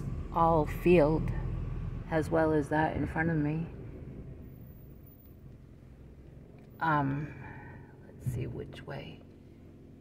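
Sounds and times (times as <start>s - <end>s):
car interior rumble: 0.0s - 10.0s.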